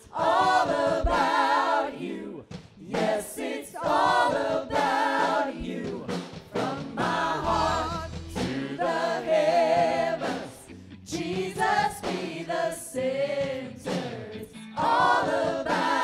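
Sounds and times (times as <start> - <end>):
other voices singing: 0.0 - 16.0
worship band playing: 3.8 - 16.0
woman singing with vibrato: 7.0 - 10.6.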